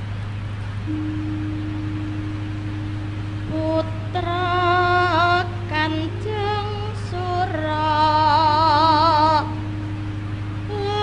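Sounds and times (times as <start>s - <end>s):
low constant hum: 0.0s - 11.0s
steady pure tone: 0.0s - 11.0s.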